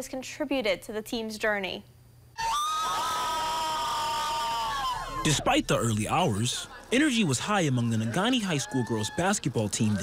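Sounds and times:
girls screaming and cheering: 0:02.4 - 0:05.5, 0:08.4 - 0:09.5.

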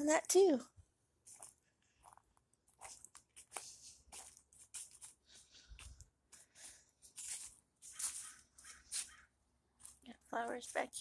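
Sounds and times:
footsteps on leaves and grass: 0:01.2 - 0:09.2, 0:09.8 - 0:11.0.

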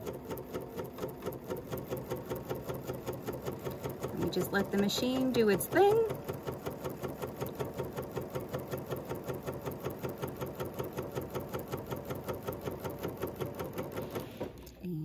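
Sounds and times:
sewing machine stitching: 0:00.0 - 0:14.8.

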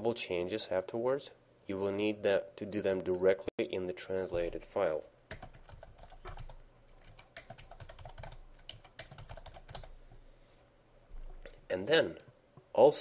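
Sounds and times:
computer keyboard typing: 0:05.3 - 0:10.0.

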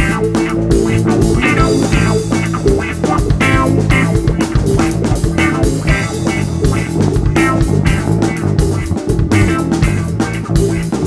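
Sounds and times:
drum kit beat: 0:00.0 - 0:11.0
electric bass guitar: 0:00.0 - 0:11.0
electric guitar: 0:00.0 - 0:11.0.

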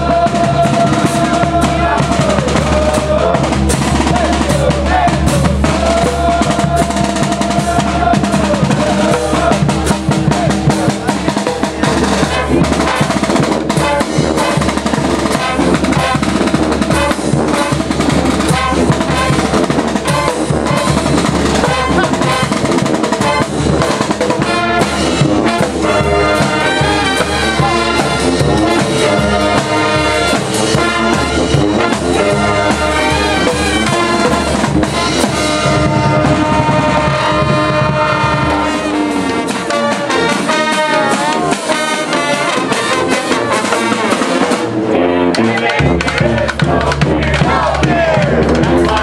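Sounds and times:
bass drum: 0:00.0 - 0:41.9, 0:45.5 - 0:49.0
marching band playing: 0:00.0 - 0:49.0.

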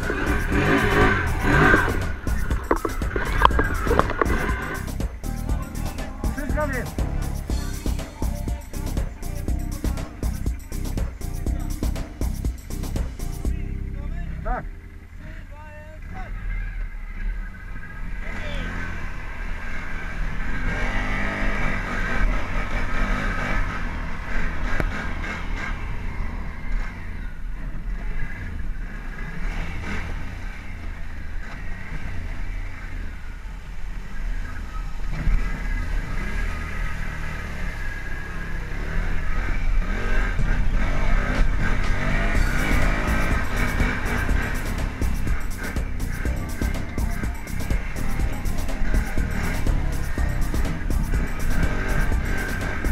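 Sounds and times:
music soundtrack: 0:00.0 - 0:15.6, 0:42.3 - 0:52.9
quad bike engine running: 0:00.0 - 0:52.9.

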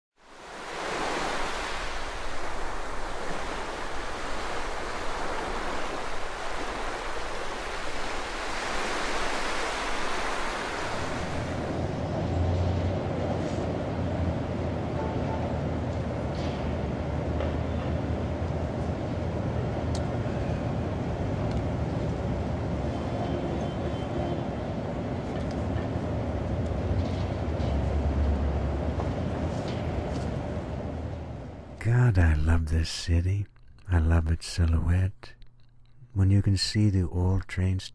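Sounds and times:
faint clicks: 0:35.3 - 0:36.2.

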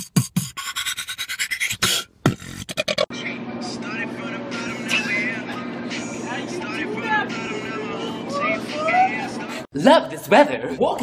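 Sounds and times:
beatboxing kick-drum beats: 0:00.0 - 0:03.1
scratch-like mouth sounds: 0:00.0 - 0:03.1.

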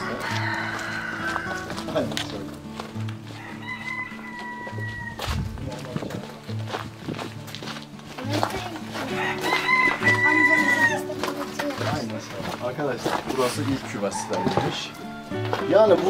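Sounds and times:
rooster crowing: 0:00.0 - 0:01.9, 0:03.3 - 0:05.4, 0:09.1 - 0:11.1, 0:14.0 - 0:15.6
background music with low beat: 0:00.0 - 0:16.0.

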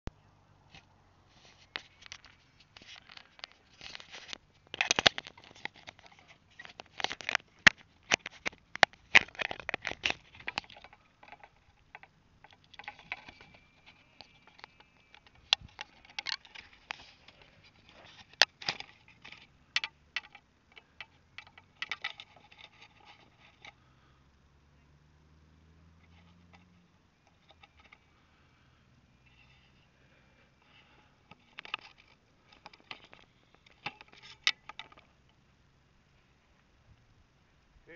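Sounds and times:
camera handling scrapes and knocks: 0:01.3 - 0:19.5, 0:30.8 - 0:35.0.

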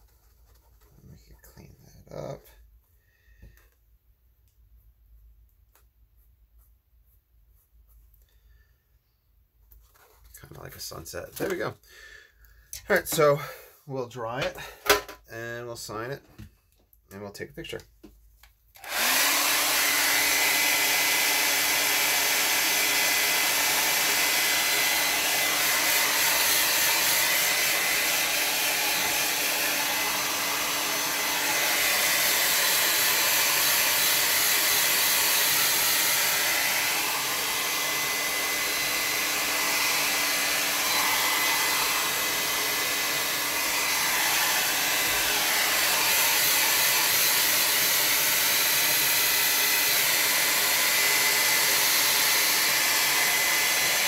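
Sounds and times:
hair dryer blowing: 0:18.8 - 0:54.0.

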